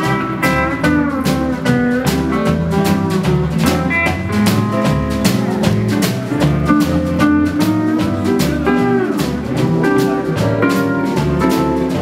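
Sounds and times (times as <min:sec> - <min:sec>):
swing band playing: 0:00.0 - 0:12.0.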